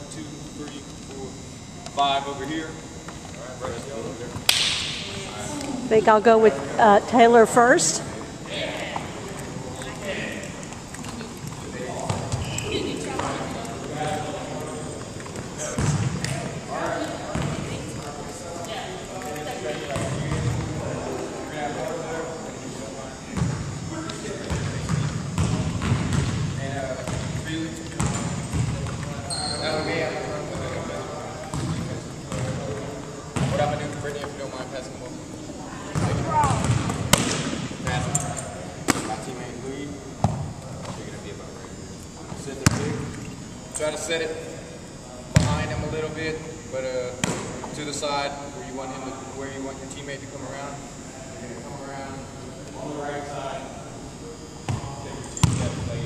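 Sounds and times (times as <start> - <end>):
background chatter: 0.0 - 56.0
basketballs bouncing on wooden floor: 35.9 - 37.4.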